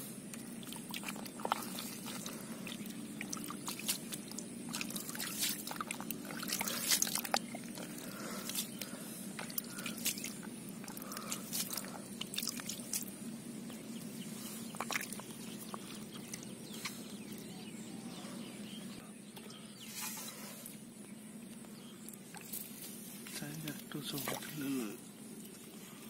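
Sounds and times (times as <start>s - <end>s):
low steady hum: 0.0s - 26.0s
hands squelching through wet mud: 0.2s - 13.2s, 14.4s - 17.5s.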